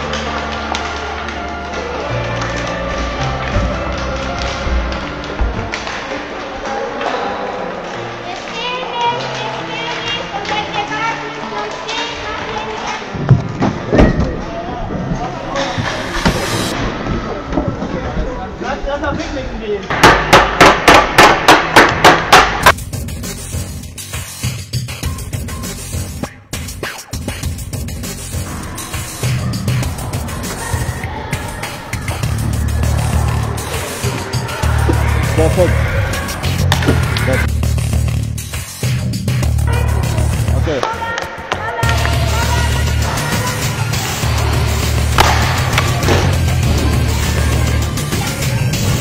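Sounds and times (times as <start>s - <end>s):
hockey sticks knocking on floor: 19.9s - 22.8s, 36.6s - 37.3s, 45.1s - 46.4s
background music with bass: 22.5s - 40.8s, 41.7s - 49.0s
hockey stick striking ball: 36.6s - 37.3s, 45.1s - 46.5s.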